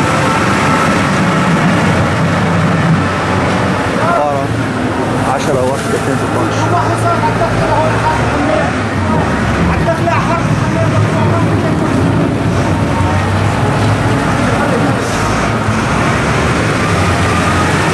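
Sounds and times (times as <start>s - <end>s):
people talking: 3.9s - 15.6s.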